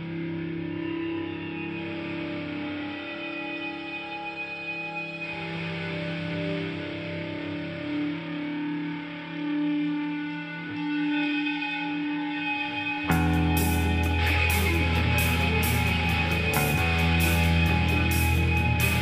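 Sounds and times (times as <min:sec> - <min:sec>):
electric guitar with echo: 0:00.0 - 0:19.0
full rock band playing: 0:13.2 - 0:19.0.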